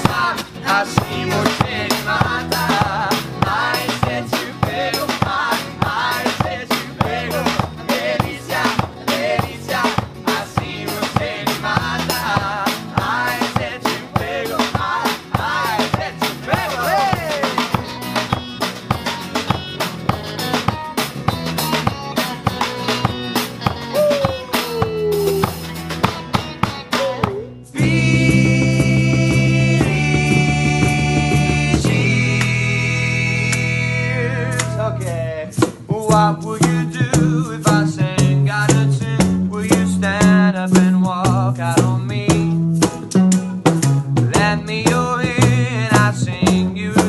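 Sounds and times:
live instrumental band music: 0:00.0 - 0:32.2, 0:38.2 - 0:47.0.

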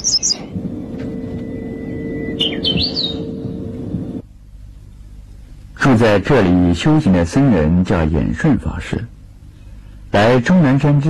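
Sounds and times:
small birds chirping: 0:00.0 - 0:00.5, 0:02.2 - 0:03.7
bird whistling rising sweeps: 0:00.0 - 0:04.2
steady low drone: 0:00.0 - 0:07.2.

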